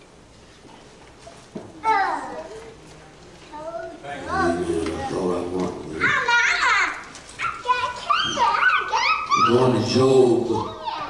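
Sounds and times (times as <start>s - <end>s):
young child's high-pitched voice: 1.8s - 2.7s, 6.0s - 9.6s, 10.6s - 11.0s.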